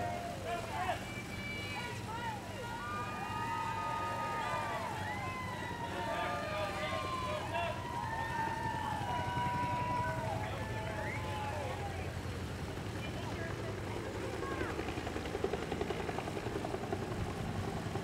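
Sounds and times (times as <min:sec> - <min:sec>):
crowd cheering and shouting: 0:00.0 - 0:12.3
low engine drone: 0:00.0 - 0:14.6.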